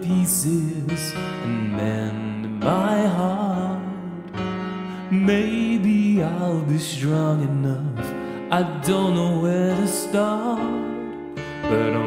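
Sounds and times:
digital piano notes: 0:00.0 - 0:12.0
man singing: 0:00.0 - 0:12.0.

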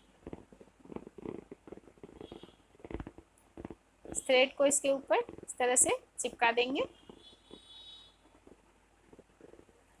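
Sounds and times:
fingers handling thread: 0:00.2 - 0:04.2.

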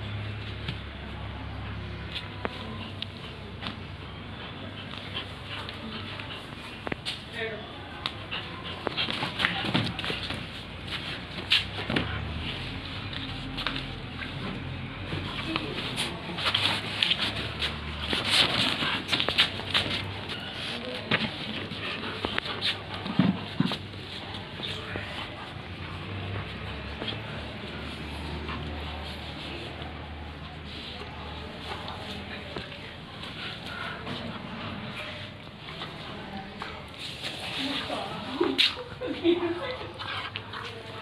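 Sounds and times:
dog play vocalizing: 0:38.5 - 0:41.0.

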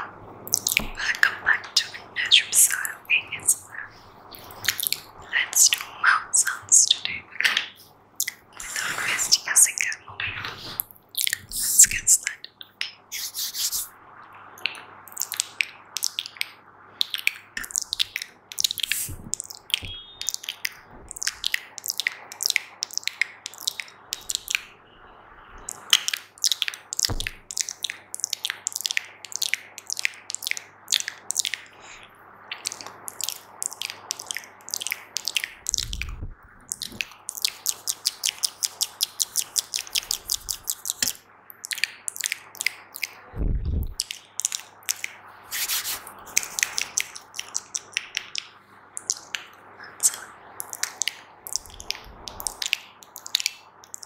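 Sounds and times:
wet mouth clicks and pops: 0:00.5 - 0:13.9, 0:14.6 - 0:24.7, 0:25.6 - 0:54.0
low thumps: 0:27.1 - 0:27.5, 0:35.8 - 0:36.6, 0:43.4 - 0:44.0.

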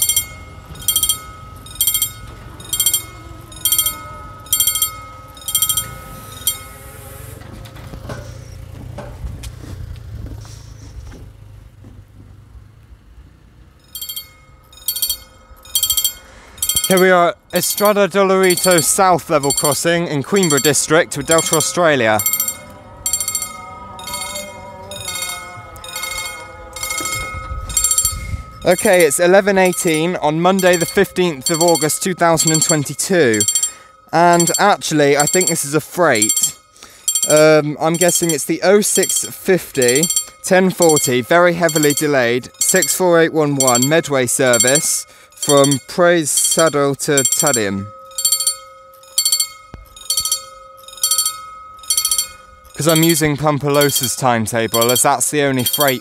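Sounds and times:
level crossing bells ringing: 0:00.0 - 0:08.7, 0:13.7 - 0:56.0.

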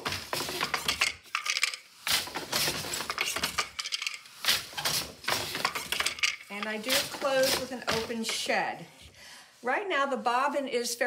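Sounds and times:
loom wooden clacks and rattles: 0:00.0 - 0:08.5.

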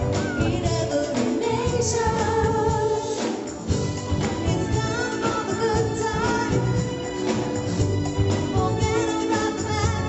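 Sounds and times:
live band playing dance pop: 0:00.0 - 0:10.0.

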